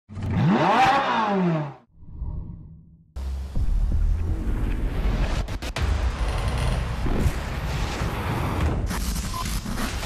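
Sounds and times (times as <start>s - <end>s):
engine revving: 0.1s - 1.9s.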